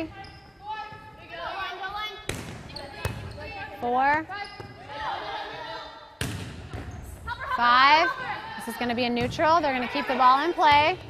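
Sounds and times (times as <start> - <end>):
sharp volleyball contacts: 0.0 - 11.0.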